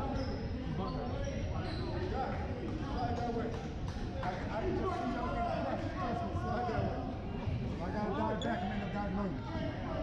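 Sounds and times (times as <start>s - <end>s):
people talking: 0.0s - 10.0s.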